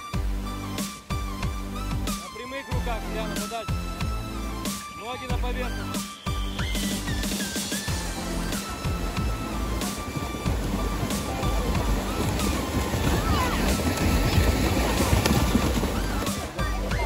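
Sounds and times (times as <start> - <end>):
background music: 0.0 - 17.0
swimmers splashing: 4.6 - 17.0.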